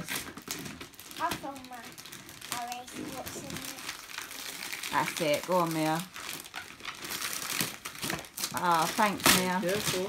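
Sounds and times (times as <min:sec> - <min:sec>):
wrapping paper crinkling and tearing: 0:00.0 - 0:10.0
child's voice: 0:01.2 - 0:04.1.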